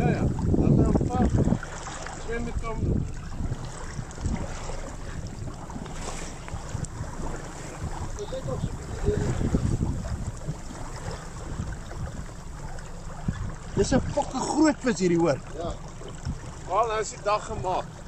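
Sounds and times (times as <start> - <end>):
water sloshing against hull: 0.0 - 18.0
wind buffeting microphone: 0.0 - 18.0.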